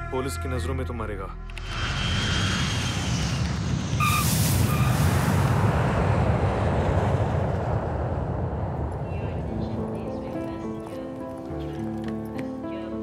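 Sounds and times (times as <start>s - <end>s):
jet engines rumbling: 1.5s - 11.6s.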